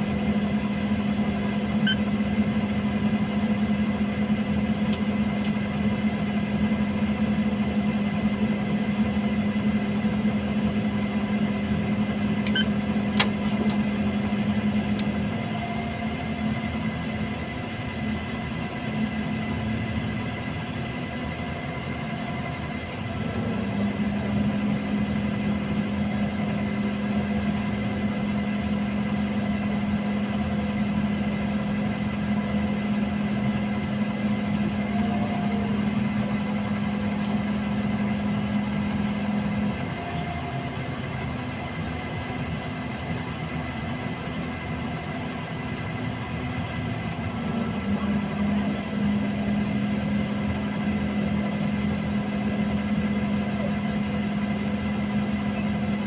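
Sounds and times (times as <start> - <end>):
diesel engine idling: 0.0 - 56.0.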